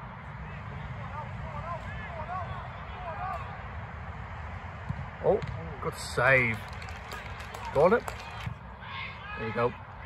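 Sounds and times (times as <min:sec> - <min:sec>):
distant shouts and calls: 0:06.2 - 0:10.0.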